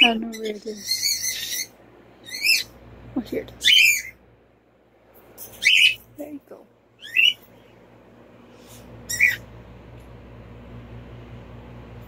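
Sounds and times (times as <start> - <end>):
high-pitched animal calls: 0.0 - 2.8, 9.1 - 9.4.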